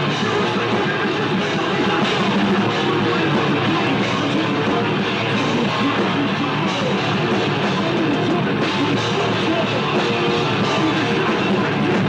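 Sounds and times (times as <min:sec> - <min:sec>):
distorted electric guitars: 0:00.0 - 0:12.0
pounding drum kit: 0:00.0 - 0:12.0.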